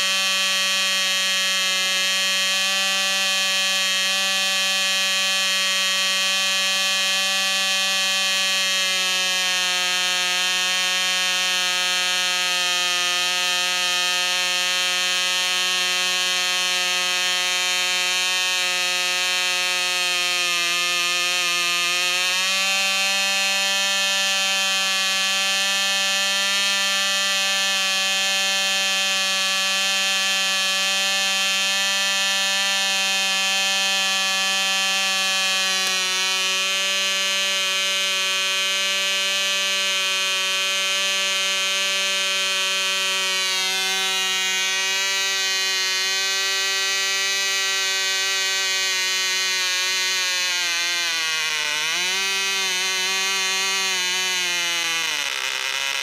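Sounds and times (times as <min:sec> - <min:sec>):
model engine high-pitched buzz: 0:00.0 - 0:56.0.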